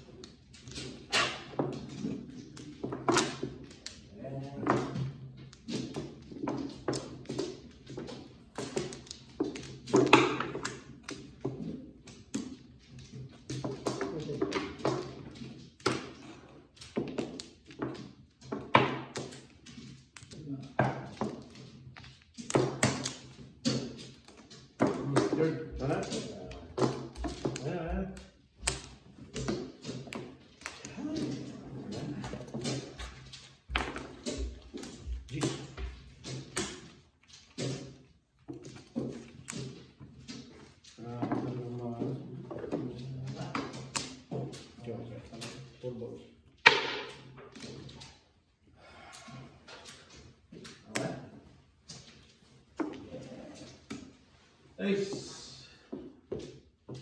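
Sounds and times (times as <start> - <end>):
mahjong tiles clicking: 0.0 - 45.8, 46.4 - 54.5
people talking: 24.9 - 26.9, 30.8 - 32.6, 35.3 - 35.8, 41.0 - 43.8, 54.8 - 55.7.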